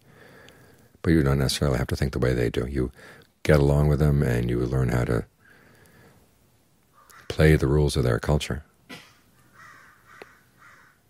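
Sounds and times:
faint bird calls: 6.9 - 7.4, 8.9 - 11.0.

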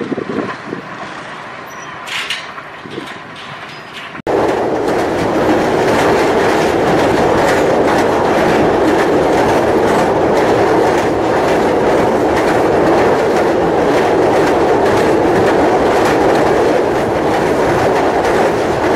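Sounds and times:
train wheels rumbling on rails: 0.0 - 18.9
wheels clicking over rail joints: 0.0 - 18.9.

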